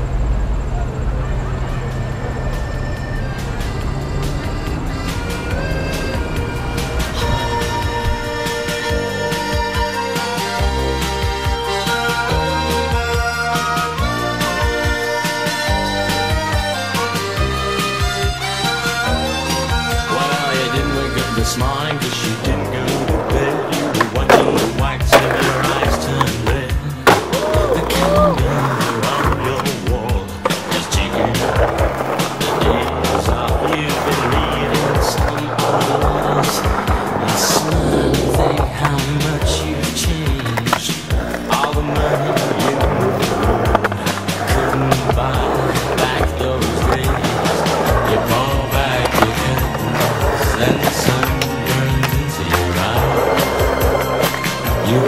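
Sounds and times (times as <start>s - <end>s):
skateboard wheels rolling on concrete: 0.0s - 55.0s
skateboard clacks: 1.8s - 55.0s
music with steady beat: 2.4s - 55.0s.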